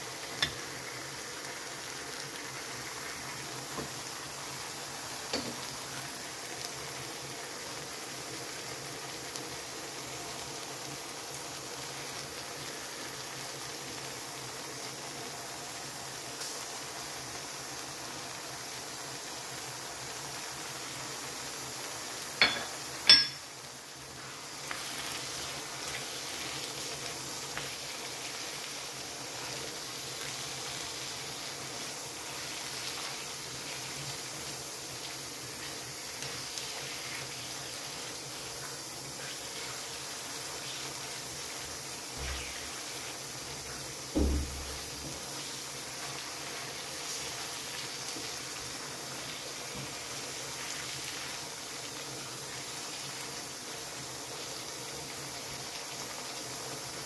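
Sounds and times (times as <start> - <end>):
vegetables sizzling in a pan: 0.0 - 57.0.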